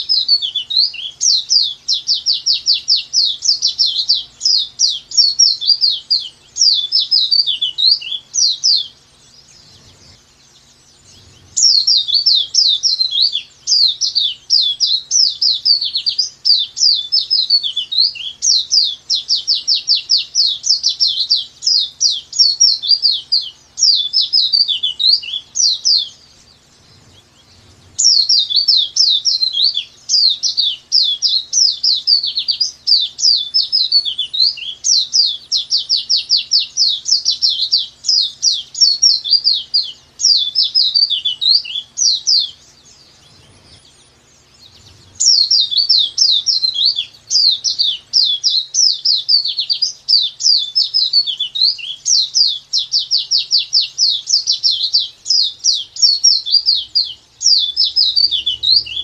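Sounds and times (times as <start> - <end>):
bird singing high falling notes: 0.0 - 59.0.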